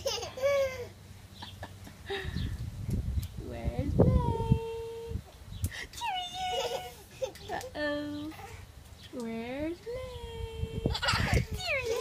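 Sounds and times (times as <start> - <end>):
toddler squealing: 6.0 - 7.0.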